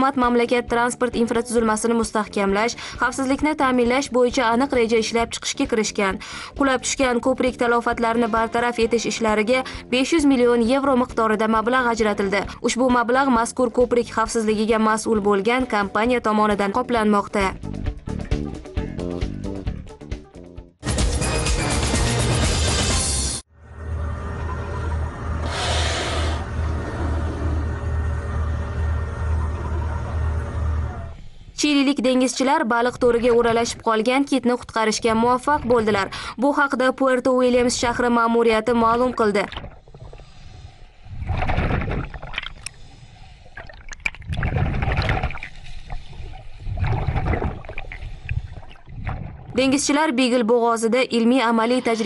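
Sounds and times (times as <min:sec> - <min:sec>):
steady low rumble: 0:23.6 - 0:31.8
water sloshing and gurgling: 0:37.5 - 0:50.1.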